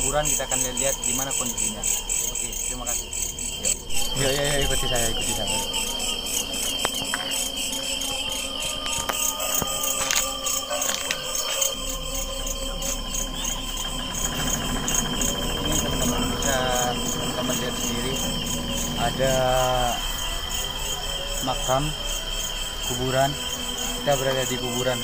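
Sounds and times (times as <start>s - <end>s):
crickets chirping: 0.0s - 25.0s
high insect trill: 0.0s - 25.0s.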